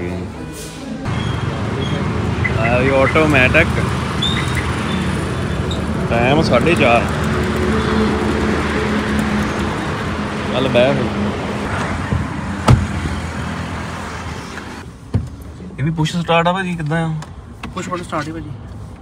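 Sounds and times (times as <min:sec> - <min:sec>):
roadside traffic with low hum: 0:00.0 - 0:19.0.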